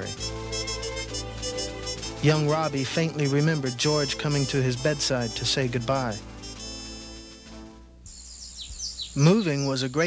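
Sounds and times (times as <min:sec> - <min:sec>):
background music: 0:00.0 - 0:08.4
small birds chirping: 0:08.1 - 0:10.0.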